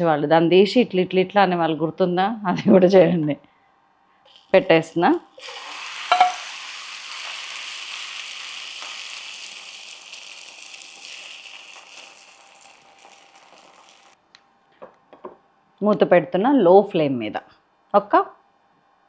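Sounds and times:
batter sizzling in a pan: 4.3s - 14.2s.

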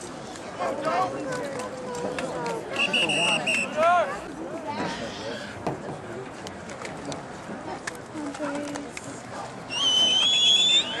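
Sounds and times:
sports whistle blast: 2.8s - 3.8s, 9.7s - 11.0s.

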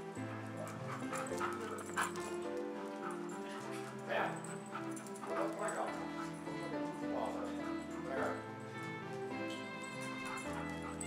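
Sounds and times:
background music chords: 0.0s - 11.0s.

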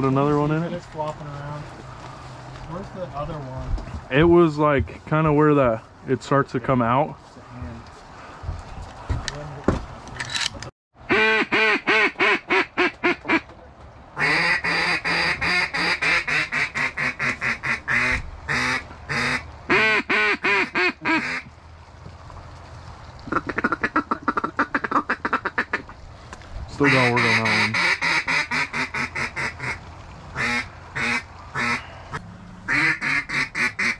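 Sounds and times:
duck call quacking: 11.1s - 13.4s, 14.2s - 21.5s, 23.3s - 25.9s, 26.8s - 29.8s, 30.4s - 31.8s, 32.7s - 33.9s.

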